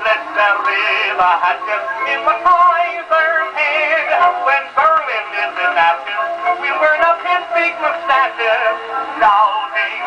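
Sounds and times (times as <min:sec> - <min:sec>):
man singing with vibrato: 0:00.0 - 0:10.0.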